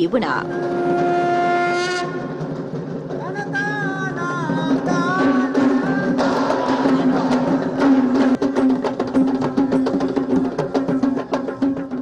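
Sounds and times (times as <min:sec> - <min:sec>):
wind instrument long note: 0:00.4 - 0:02.3.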